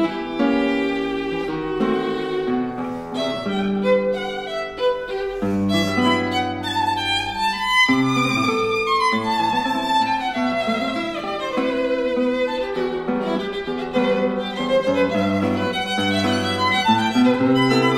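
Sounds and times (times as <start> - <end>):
bowed violin melody: 0.0 - 17.9
plucked classical guitar: 0.0 - 17.9.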